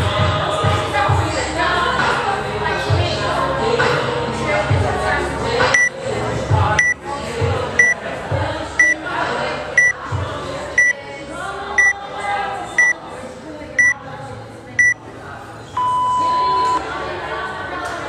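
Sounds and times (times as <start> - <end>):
countdown timer beeps: 8.8 - 9.0.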